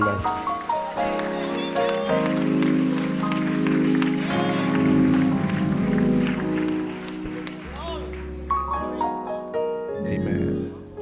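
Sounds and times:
people clapping: 0.0s - 9.1s
keyboard playing sustained chords: 0.0s - 11.0s.

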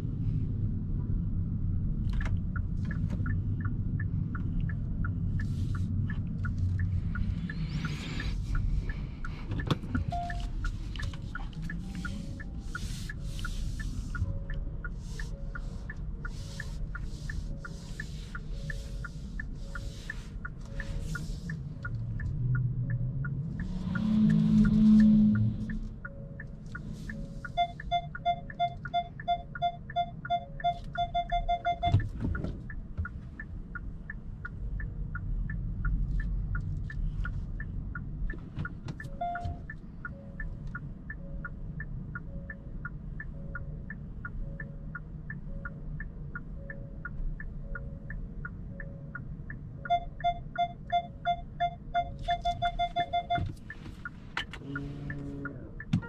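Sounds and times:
low cabin hum: 0.0s - 56.0s
parking sensor beeping rapidly: 6.1s - 21.4s, 25.6s - 33.9s, 38.6s - 56.0s.

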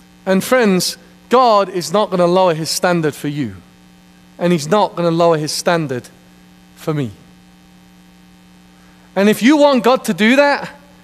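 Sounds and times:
faint electrical hum: 0.0s - 11.0s
man speaking: 0.2s - 3.7s, 4.4s - 6.2s, 6.8s - 7.3s, 9.2s - 11.0s.

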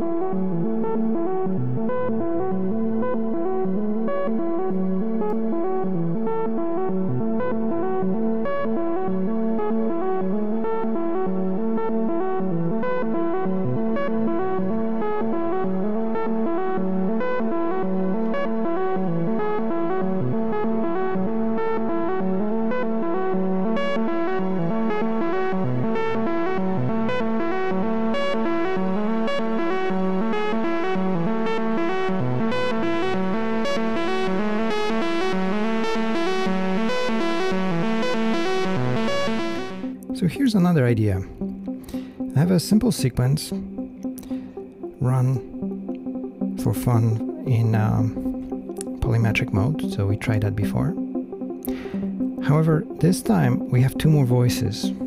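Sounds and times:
synthesizer plucky note sequence: 0.0s - 55.0s.

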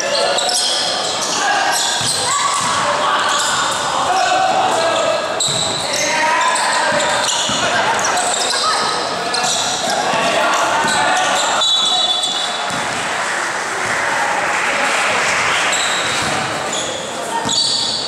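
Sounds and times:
basketball bouncing on court: 5.4s - 5.8s, 12.7s - 13.0s.

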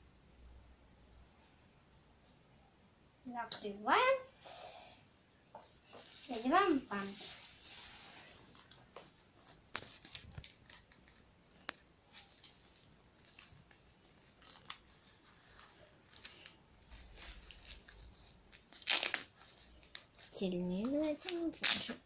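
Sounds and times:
diaper rustling and crinkling: 5.7s - 22.0s
adhesive tape tab ripping: 18.7s - 19.4s, 21.2s - 22.0s.

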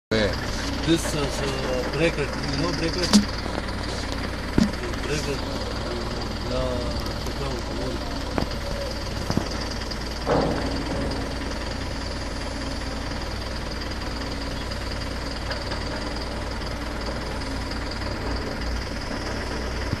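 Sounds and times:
road noise: 0.1s - 20.0s
vehicle engine rumble: 0.1s - 20.0s
short knocks: 3.0s - 3.6s, 4.5s - 5.1s.

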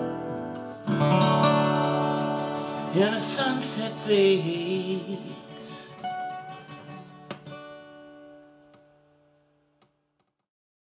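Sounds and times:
acoustic guitars strumming chord: 0.0s - 9.4s.

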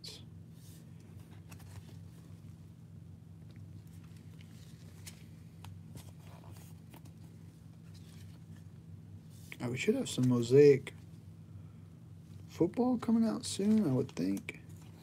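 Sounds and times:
steady low hum: 0.0s - 15.0s
trading cards clicking and rustling: 13.4s - 15.0s.

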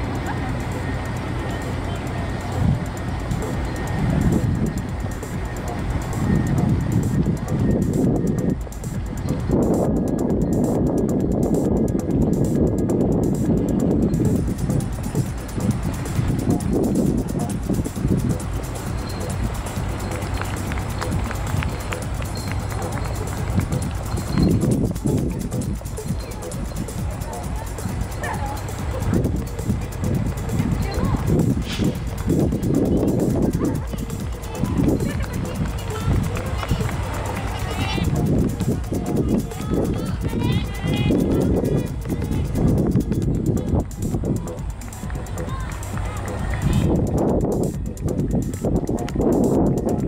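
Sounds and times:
people talking and calling out: 0.0s - 50.0s
wind rumbling on microphone: 0.0s - 50.0s.

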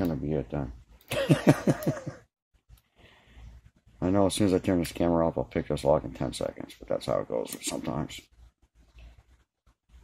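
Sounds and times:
man laughing: 1.1s - 2.3s.

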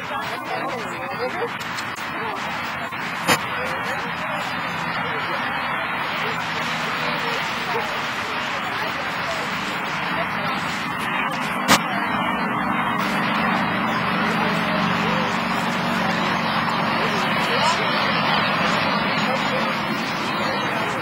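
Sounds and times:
indistinct background voices: 0.0s - 21.0s
steady wash of noise: 0.0s - 21.0s.

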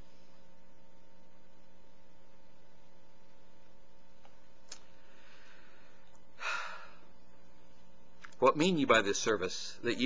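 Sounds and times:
low electrical hum: 0.0s - 10.0s
short breath: 5.0s - 7.1s.

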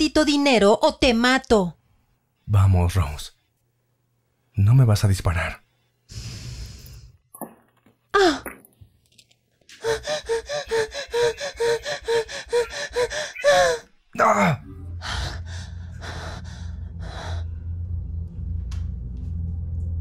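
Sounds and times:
woman panting in rapid gasps: 9.8s - 13.9s
woman gasping cry: 9.8s - 14.6s
low music drone: 14.4s - 20.0s.

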